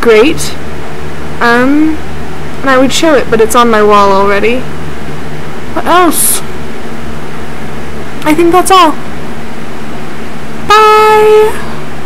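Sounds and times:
low hum: 0:00.0 - 0:12.0
woman calling out high: 0:10.7 - 0:11.7.

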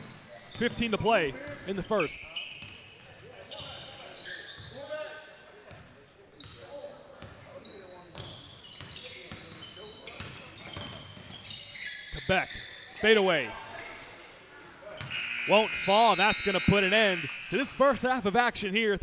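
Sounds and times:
sneakers squeaking on gym floor: 0:00.0 - 0:17.6
voices calling out: 0:15.0 - 0:18.2.

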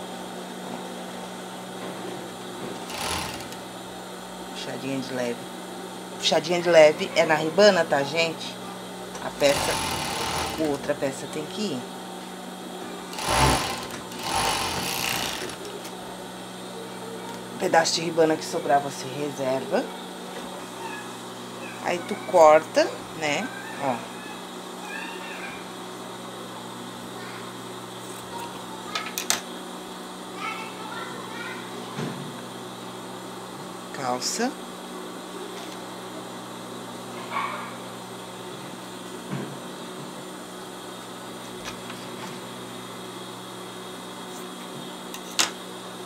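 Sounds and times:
sewing machine motor humming: 0:02.8 - 0:03.7, 0:09.4 - 0:10.9, 0:13.1 - 0:15.8.

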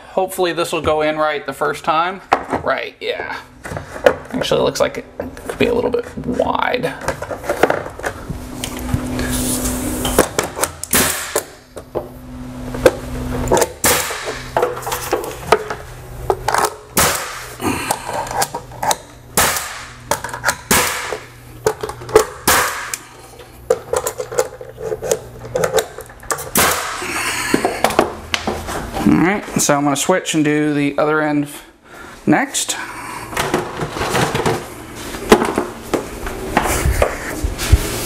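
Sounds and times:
nail gun firing: 0:10.8 - 0:11.6, 0:13.5 - 0:14.5, 0:17.0 - 0:17.5, 0:19.4 - 0:20.0, 0:20.6 - 0:21.2, 0:22.4 - 0:23.0, 0:26.5 - 0:27.0.

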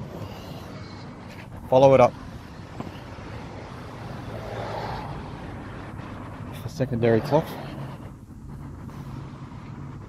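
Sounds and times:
low hum: 0:00.0 - 0:10.0
road traffic rumble: 0:00.0 - 0:10.0
vehicle passing by: 0:00.7 - 0:10.0.

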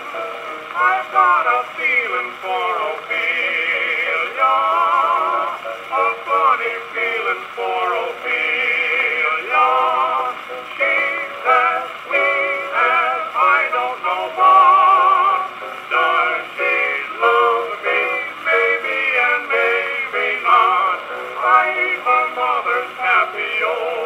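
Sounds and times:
old gramophone record of comic duet: 0:00.0 - 0:24.0.

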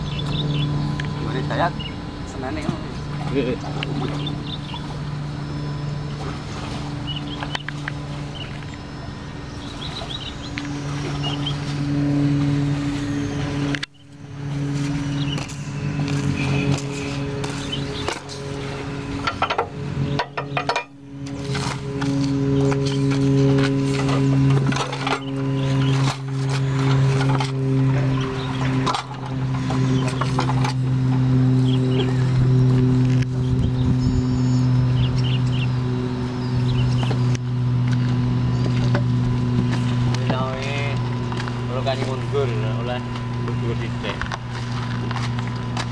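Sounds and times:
diesel engine running: 0:00.0 - 0:45.9.

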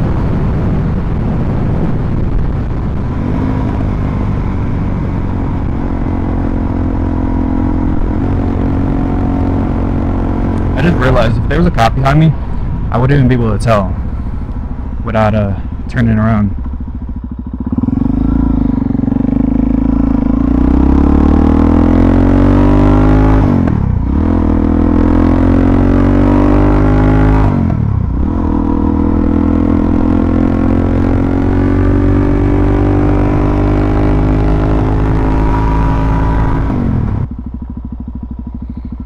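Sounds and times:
motorcycle engine accelerating: 0:00.0 - 0:39.0.

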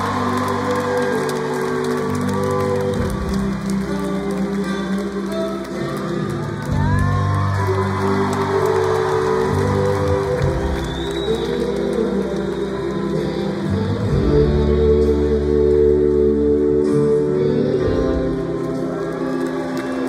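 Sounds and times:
rock band playing low chords: 0:00.0 - 0:12.0, 0:12.8 - 0:20.0
crowd noise: 0:00.0 - 0:20.0.

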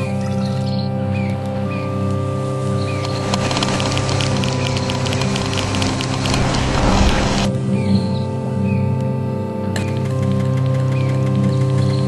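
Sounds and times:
low sustained drone: 0:00.0 - 0:11.9
crackling hissing noise: 0:01.5 - 0:07.6.

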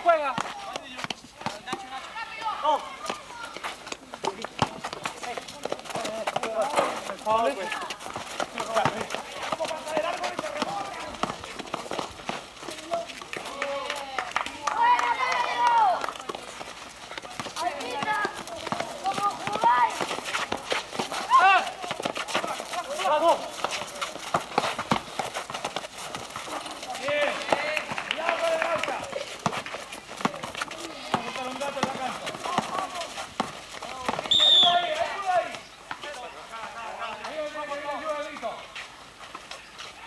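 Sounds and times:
players shouting: 0:00.0 - 0:38.6
shoes striking hard court: 0:00.0 - 0:40.0
basketball bouncing: 0:00.1 - 0:13.6, 0:17.2 - 0:28.0, 0:28.6 - 0:35.0.

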